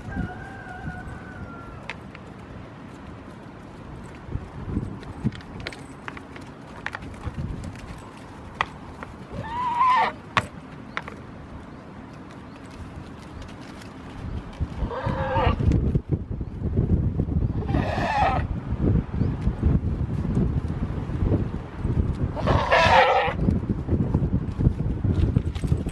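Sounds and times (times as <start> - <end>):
goats butting heads: 1.7 - 11.3, 12.2 - 16.1, 22.0 - 25.9.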